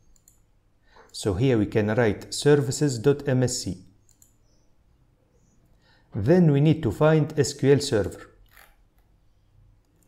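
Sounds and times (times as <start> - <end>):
faint computer mouse click: 0.0 - 1.2, 4.0 - 4.5.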